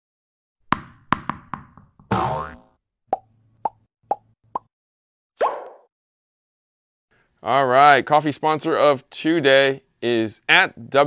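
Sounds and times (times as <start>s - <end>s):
bouncing ball taps: 0.7s - 2.1s
cartoon pops: 2.1s - 2.7s, 5.4s - 5.9s.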